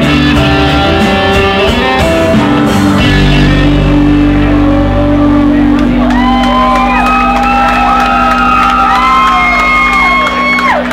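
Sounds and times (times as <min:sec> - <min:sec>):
rock song: 0:00.0 - 0:10.9
audience cheering and whooping: 0:05.8 - 0:10.9.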